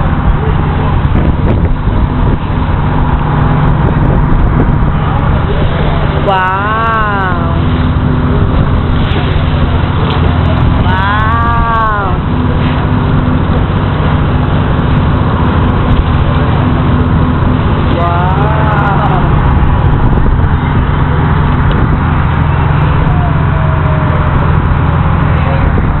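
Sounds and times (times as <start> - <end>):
boat engine humming: 0.0 - 26.0
water rushing along hull: 0.0 - 26.0
person calling out: 6.2 - 7.6, 10.8 - 12.3, 17.9 - 19.4.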